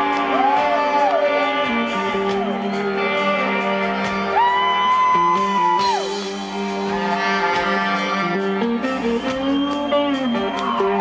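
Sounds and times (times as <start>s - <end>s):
bass: 0.0s - 11.0s
drums: 0.0s - 11.0s
electric guitar: 0.0s - 11.0s
saxophone: 0.0s - 11.0s.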